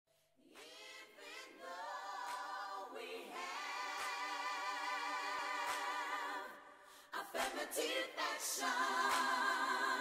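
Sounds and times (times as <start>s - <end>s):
voices singing without instruments: 0.4s - 10.0s.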